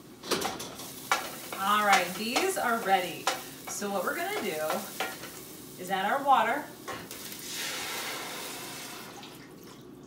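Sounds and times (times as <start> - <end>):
water sizzling in hot pan: 0.8 - 9.4.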